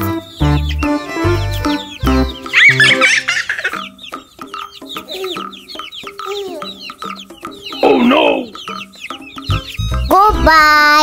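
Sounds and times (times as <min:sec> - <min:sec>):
longer bird call: 0:00.0 - 0:10.4
chicks peeping: 0:00.0 - 0:11.0
light background music: 0:00.0 - 0:11.0.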